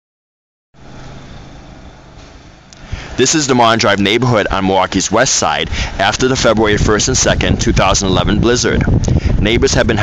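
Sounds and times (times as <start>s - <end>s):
engine running with low hum: 0.8s - 10.0s.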